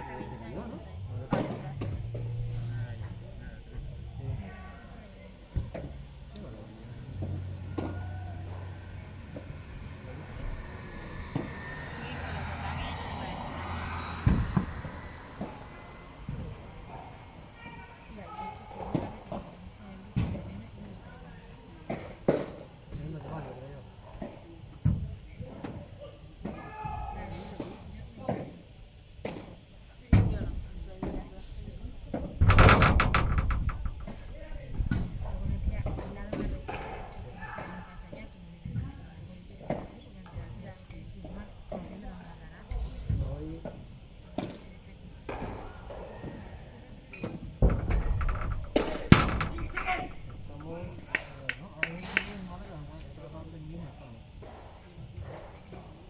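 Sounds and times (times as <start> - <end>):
players' voices: 0.0 - 56.0.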